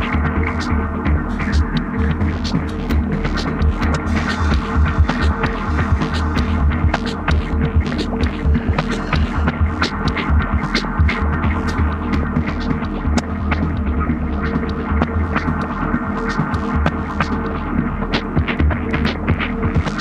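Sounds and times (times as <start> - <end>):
low throbbing electronic drone: 0.0 - 20.0.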